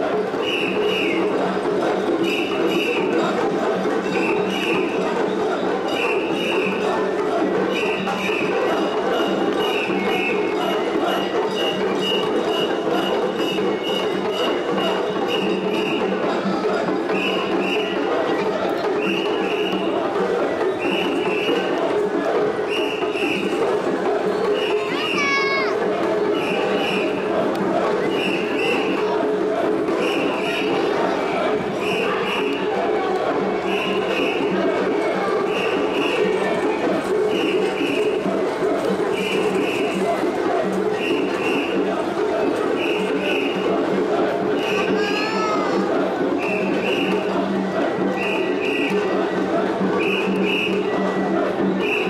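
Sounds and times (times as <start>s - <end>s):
group chanting together: 0.0s - 52.0s
loud crowd din: 0.0s - 52.0s.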